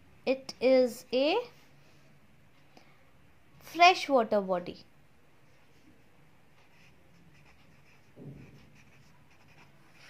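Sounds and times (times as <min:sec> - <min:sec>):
ballpoint pen scratching on paper: 0:06.6 - 0:10.0.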